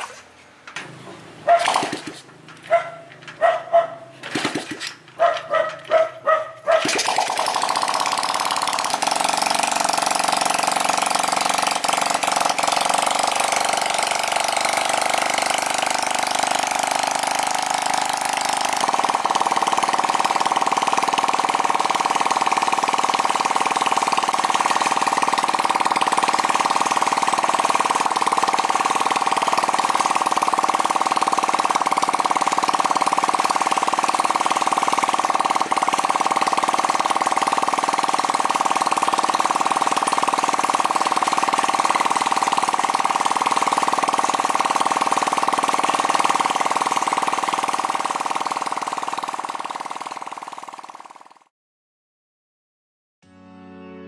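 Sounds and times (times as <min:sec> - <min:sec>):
small engine running steadily: 0:00.0 - 0:51.5.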